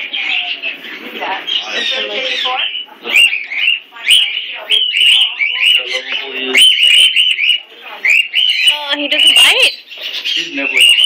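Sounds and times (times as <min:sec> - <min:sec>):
parrots chirping: 0:00.0 - 0:11.0.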